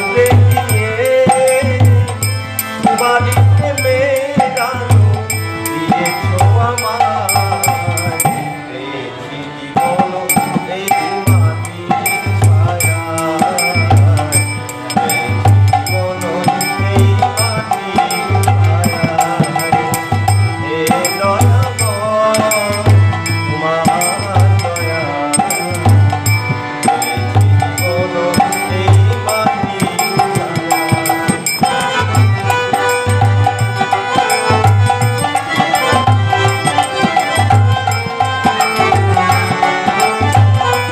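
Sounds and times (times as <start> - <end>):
percussion strokes at regular beat: 0.0 - 8.8, 9.7 - 40.9
harmonium reed notes: 0.0 - 40.9
man singing devotional song: 0.0 - 40.9.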